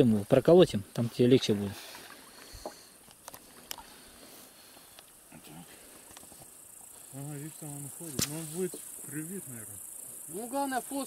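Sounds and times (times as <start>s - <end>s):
insect chirring: 0.0s - 11.0s
faint clicks: 2.4s - 3.9s
sharp knock: 8.1s - 8.4s.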